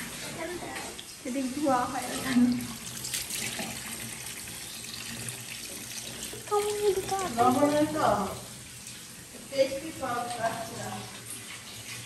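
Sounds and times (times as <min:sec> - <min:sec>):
tap water splashing into sink: 0:01.9 - 0:12.0.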